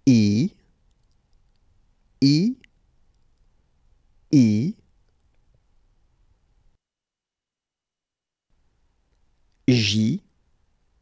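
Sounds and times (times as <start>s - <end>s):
person saying a letter: 0.0s - 0.6s, 2.2s - 2.7s, 4.3s - 4.8s, 9.6s - 10.3s.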